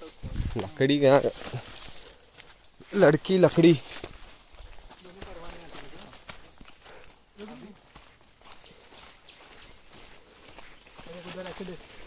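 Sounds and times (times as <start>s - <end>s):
footsteps through leaf litter: 0.0s - 12.0s
quiet voices speaking: 0.0s - 12.0s.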